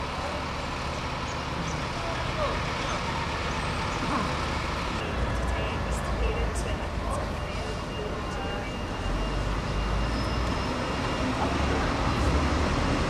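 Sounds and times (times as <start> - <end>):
diesel bus engines running: 0.0 - 13.0
traffic noise: 0.0 - 13.0.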